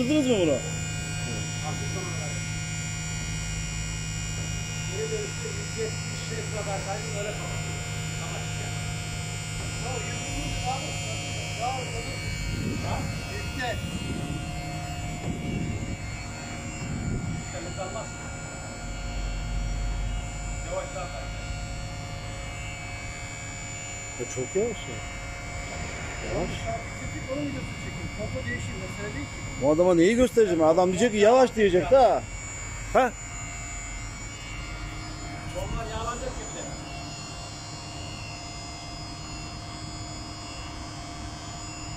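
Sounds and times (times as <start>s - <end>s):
electric crane drive humming: 0.0s - 41.9s.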